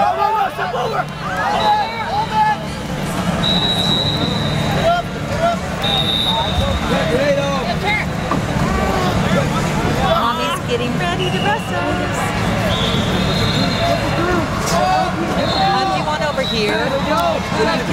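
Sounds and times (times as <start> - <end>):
crowd chatter: 0.0 - 17.9
high whistle-like tone: 3.4 - 4.8, 5.8 - 6.7, 12.6 - 14.0.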